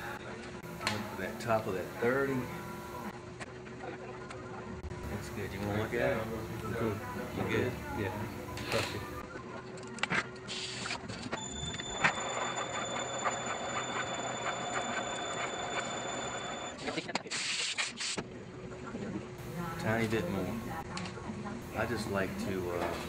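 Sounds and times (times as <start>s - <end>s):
machine spindle whining: 11.3s - 16.8s.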